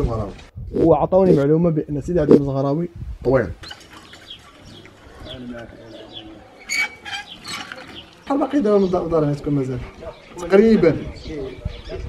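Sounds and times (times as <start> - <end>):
doves cooing: 3.6 - 12.0.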